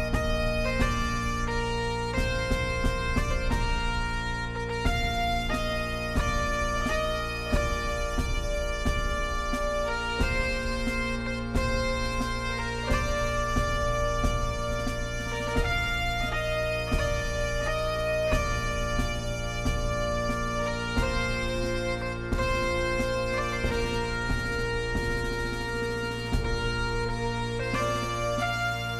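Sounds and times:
bagpipe melody over drone: 0:00.0 - 0:28.9.

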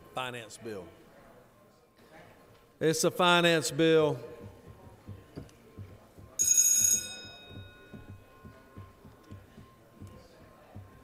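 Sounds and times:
bell chime ringing: 0:06.4 - 0:08.9.

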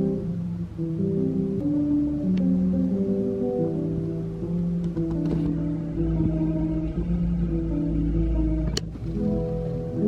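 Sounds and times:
fingerstyle classical guitar: 0:04.6 - 0:10.0.

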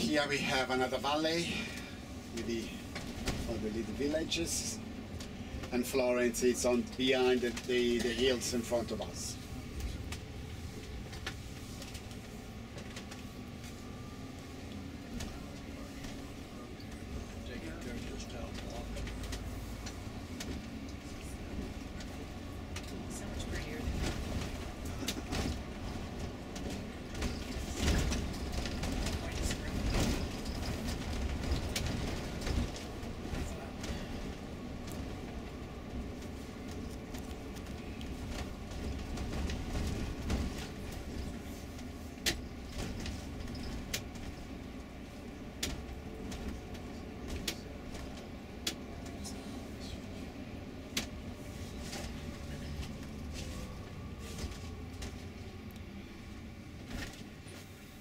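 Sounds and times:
bus engine and road rumble: 0:00.0 - 0:58.0
bus interior clicks and rattles: 0:00.0 - 0:58.0.

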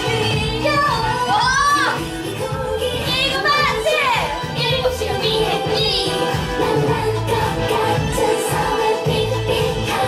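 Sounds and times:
high female vocals: 0:00.0 - 0:06.4
pop dance track: 0:00.0 - 0:10.0.

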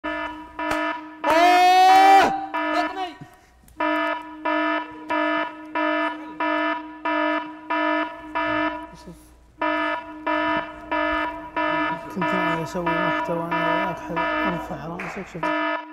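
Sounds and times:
electronic alarm beeping: 0:00.0 - 0:15.9
person shouting: 0:01.3 - 0:03.2.

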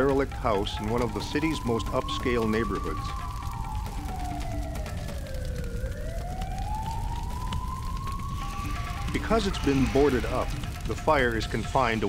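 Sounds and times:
emergency vehicle siren wailing: 0:00.0 - 0:12.0
steady low rumble: 0:00.0 - 0:12.0.

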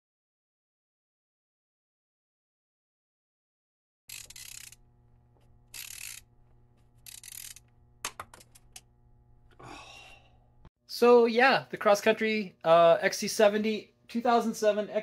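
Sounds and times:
small clicks: 0:04.1 - 0:09.6
low steady hum: 0:04.1 - 0:10.7
faint breaths: 0:09.5 - 0:10.4.

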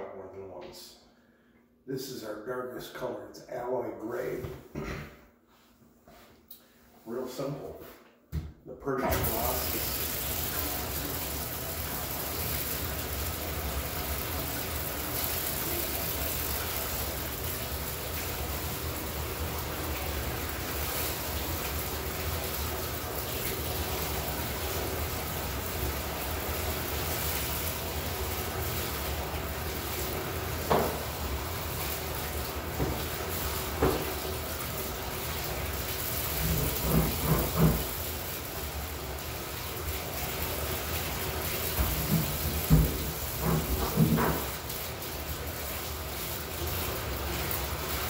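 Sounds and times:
paint roller rinsed under water: 0:09.0 - 0:48.0
faucet running: 0:09.1 - 0:48.0.

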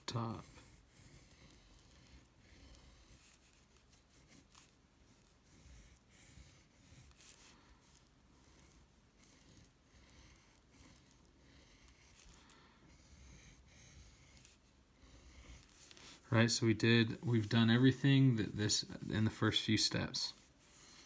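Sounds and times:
pencil scratching on paper: 0:00.0 - 0:21.0.

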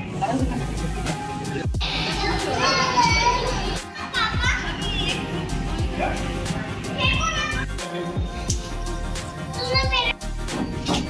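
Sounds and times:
background music with beat: 0:00.0 - 0:11.0
children calling out: 0:01.8 - 0:05.3.

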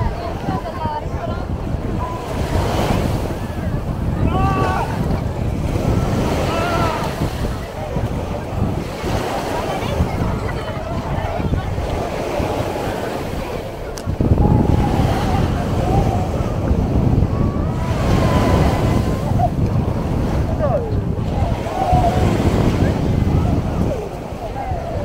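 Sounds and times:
small waves on sandy shore: 0:00.0 - 0:25.0
voices calling out: 0:00.0 - 0:25.0
wind rumbling on microphone: 0:00.0 - 0:25.0.

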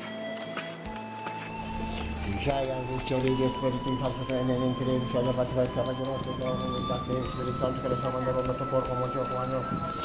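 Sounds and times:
indistinct voices: 0:01.5 - 0:10.0
thin steady high tone: 0:01.5 - 0:10.0.

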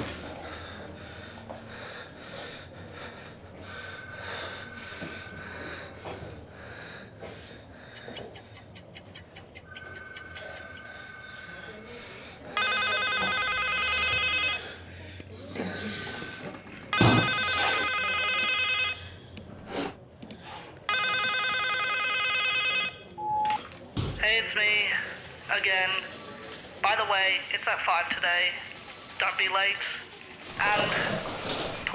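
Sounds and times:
man breathing hard and gasping: 0:00.0 - 0:08.7
telephone ringing: 0:09.7 - 0:11.7, 0:12.4 - 0:14.9, 0:16.9 - 0:19.1, 0:20.9 - 0:23.6.

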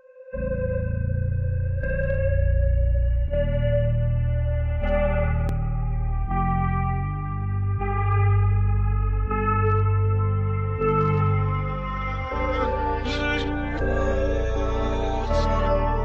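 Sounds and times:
deep sustained bass: 0:00.4 - 0:16.0
reversed guitar-like notes: 0:11.0 - 0:16.0.

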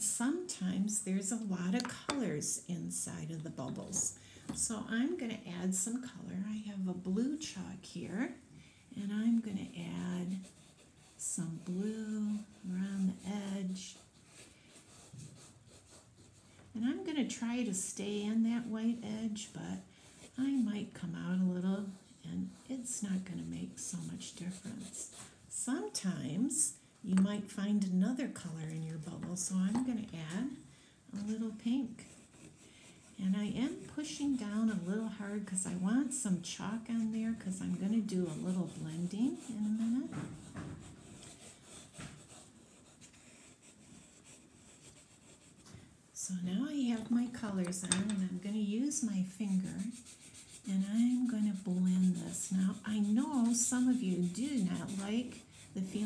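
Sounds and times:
chalk scratching on paper: 0:09.3 - 0:26.1, 0:28.5 - 0:45.7, 0:46.7 - 0:56.0.

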